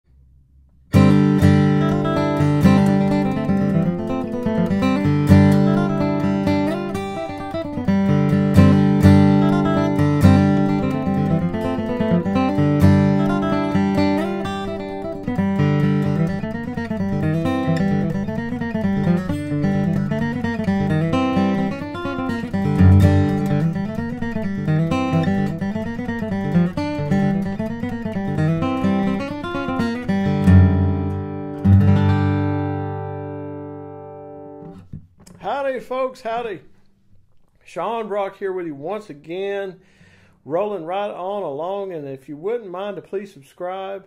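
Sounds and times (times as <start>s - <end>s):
acoustic guitar playing: 0.8s - 38.2s.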